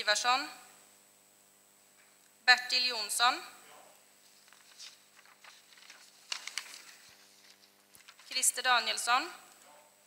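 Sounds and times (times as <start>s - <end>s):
paper rustling: 4.2s - 8.5s.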